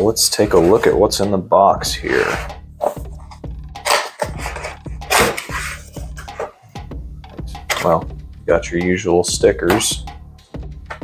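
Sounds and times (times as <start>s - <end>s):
background music: 0.0s - 11.0s
cardboard scraping rustles: 0.4s - 1.0s.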